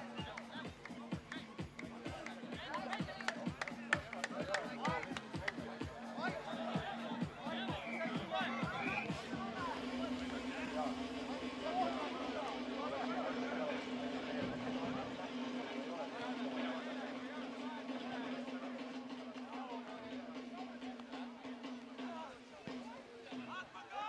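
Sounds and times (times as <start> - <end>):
background music: 0.0 - 24.0
people talking and chattering: 0.0 - 24.0.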